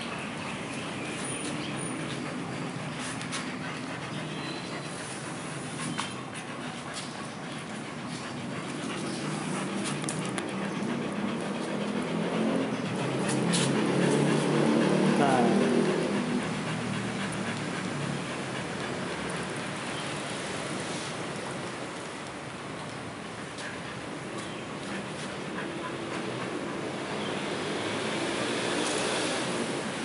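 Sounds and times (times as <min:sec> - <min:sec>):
dogs panting: 0:00.0 - 0:30.0.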